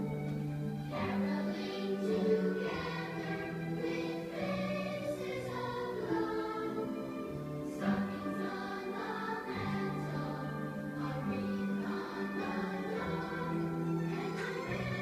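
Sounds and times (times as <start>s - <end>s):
choir singing held chords: 0.0s - 15.0s.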